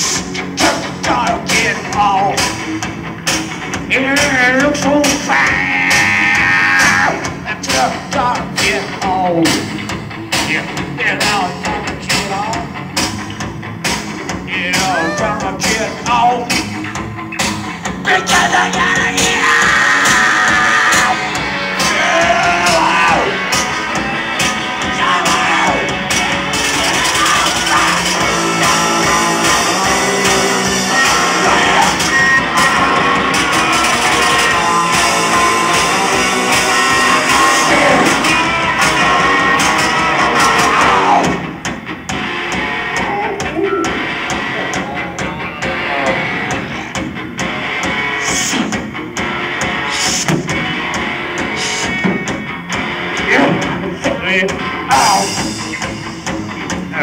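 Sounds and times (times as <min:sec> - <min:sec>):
punk band playing: 0:00.0 - 0:57.0.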